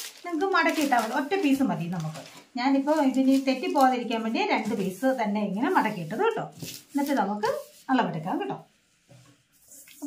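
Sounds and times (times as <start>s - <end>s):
woman speaking: 0.2s - 8.7s.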